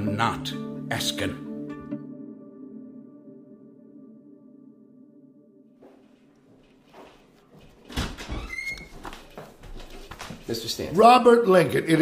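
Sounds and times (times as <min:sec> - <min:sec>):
door hinge squeak: 0:08.0 - 0:08.9.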